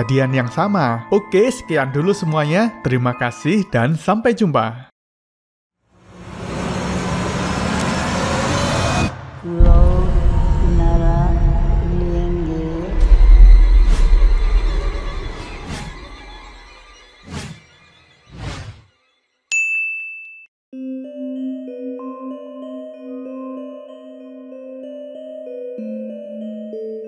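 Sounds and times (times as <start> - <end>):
noisy rumbling swell: 6.2 - 16.6
high-pitched ding: 19.5 - 20.5.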